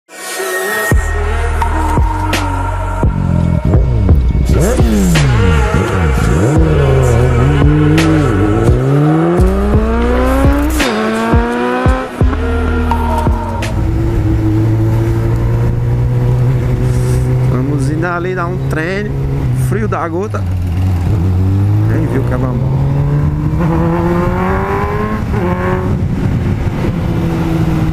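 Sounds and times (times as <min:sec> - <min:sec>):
music: 0:00.1 - 0:17.4
vehicle engine revving: 0:01.4 - 0:27.9.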